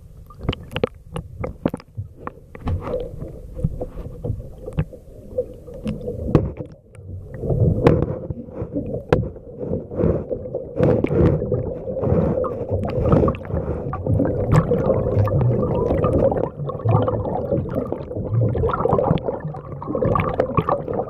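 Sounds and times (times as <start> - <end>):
faint steady hum: 0.0 - 21.0
underwater rumbling and swishing: 0.0 - 21.0.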